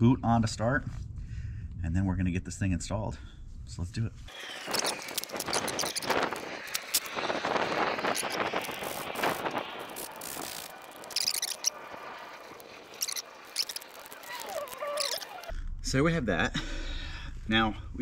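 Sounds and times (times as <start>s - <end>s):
short wavering squeak: 4.3s - 7.1s, 9.9s - 15.5s.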